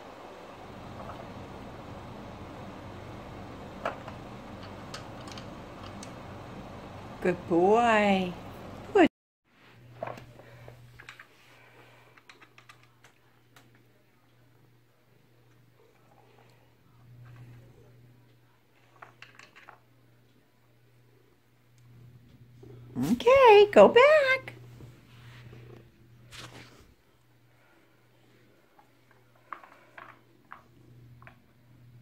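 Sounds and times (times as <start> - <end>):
steady low hum: 0.0 - 32.0
cat purring: 15.2 - 19.0, 22.0 - 23.3
short rustle: 24.8 - 27.0.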